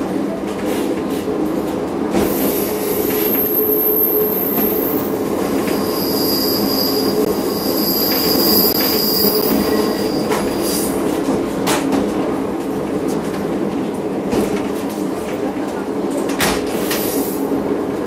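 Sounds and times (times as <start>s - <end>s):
train wheels running on rails: 0.0s - 18.0s
high-pitched wheel squeal: 3.2s - 10.9s.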